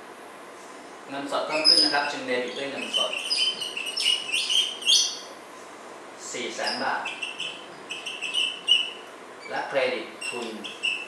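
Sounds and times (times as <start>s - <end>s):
marker squeaking on whiteboard: 1.5s - 5.4s, 6.4s - 11.0s.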